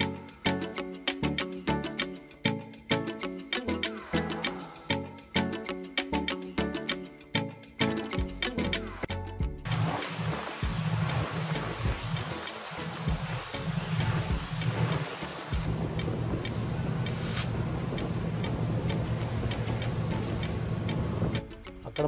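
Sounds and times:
rushing wake water: 9.7s - 21.4s
boat motor humming: 9.7s - 21.5s.

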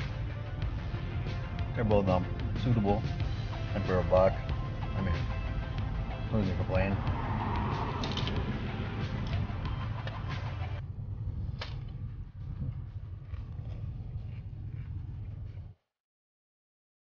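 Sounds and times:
low car cabin rumble: 0.0s - 15.8s.

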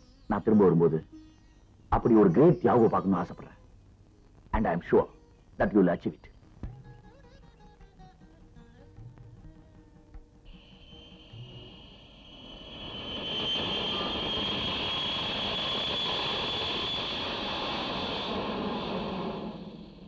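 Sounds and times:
jet aircraft passing: 10.6s - 20.0s.

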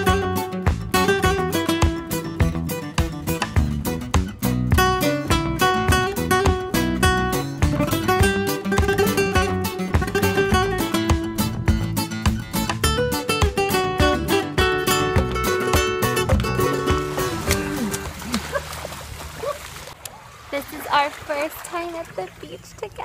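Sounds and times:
fast flamenco acoustic guitar: 0.0s - 18.6s.

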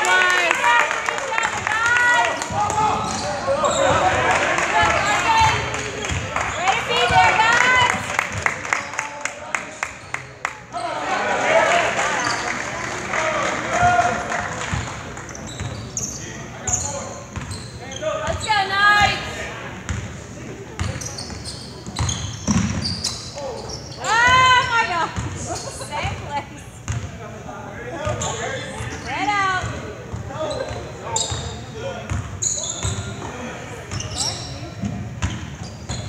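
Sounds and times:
players and spectators shouting: 0.0s - 8.1s, 10.7s - 14.6s, 24.0s - 25.0s.

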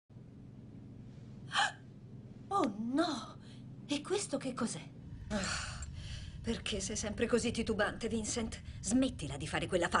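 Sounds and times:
faint low hum: 0.1s - 10.0s.

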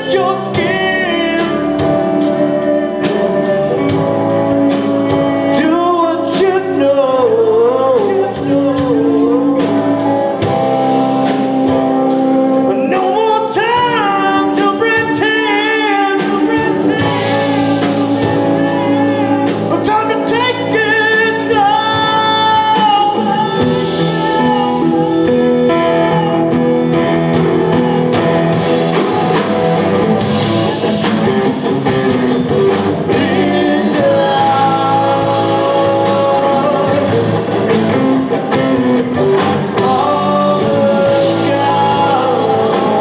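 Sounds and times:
electric guitar bending notes: 0.0s - 43.0s
live blues band playing: 0.0s - 43.0s.

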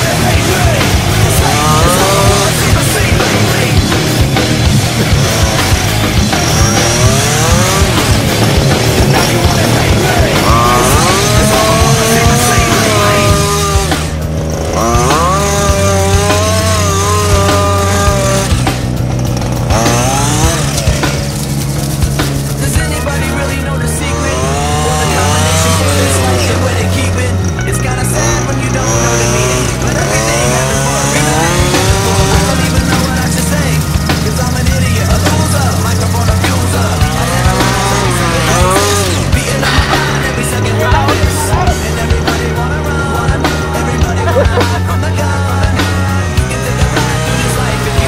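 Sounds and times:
bass guitar notes: 0.0s - 48.0s
distorted buzzing tone: 0.0s - 48.0s
rock music with vocals: 0.0s - 48.0s.

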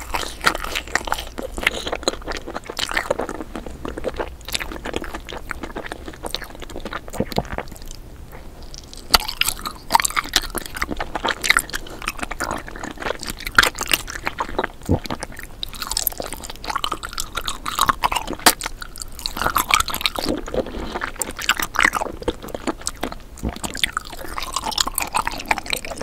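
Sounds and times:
chewing jelly sweet crunches: 0.0s - 26.0s.

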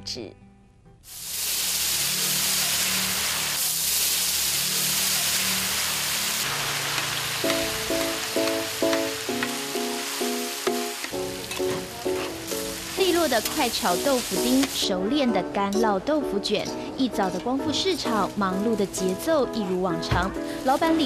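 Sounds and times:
tofu sizzling on griddle: 1.1s - 14.8s
music with short repeated notes: 7.4s - 21.0s.

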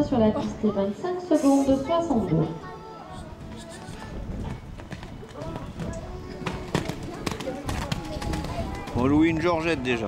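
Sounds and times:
faint background music: 0.0s - 10.0s
voices: 0.0s - 10.0s
horse hoofbeats on wet sand: 4.4s - 9.6s.

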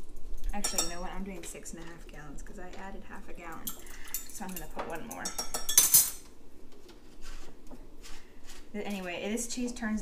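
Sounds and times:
handling metal spoons and bottle: 0.4s - 1.1s, 3.6s - 6.3s.

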